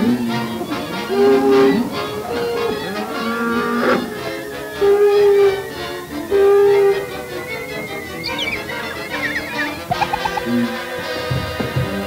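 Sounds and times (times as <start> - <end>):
orchestral film score: 0.0 - 12.0.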